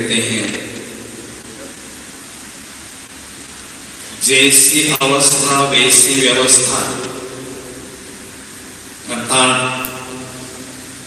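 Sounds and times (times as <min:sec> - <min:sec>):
man talking: 0:00.0 - 0:00.8, 0:04.2 - 0:07.1, 0:09.1 - 0:10.3
background hiss: 0:00.0 - 0:11.0.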